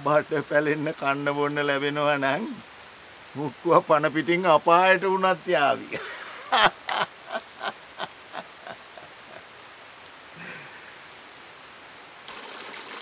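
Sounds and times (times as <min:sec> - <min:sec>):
forest stream rushing: 0:00.0 - 0:13.0
rain patter: 0:00.0 - 0:13.0
man laughing: 0:05.8 - 0:09.4.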